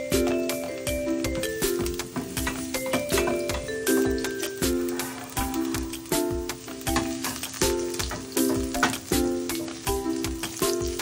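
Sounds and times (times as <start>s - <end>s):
background music with beat: 0.0s - 11.0s
garlic sizzling in oil: 0.0s - 11.0s.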